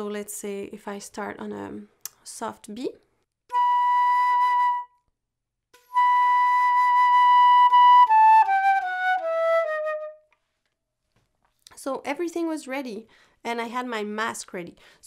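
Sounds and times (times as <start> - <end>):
flute playing notes: 3.5 - 5.1, 5.8 - 10.3.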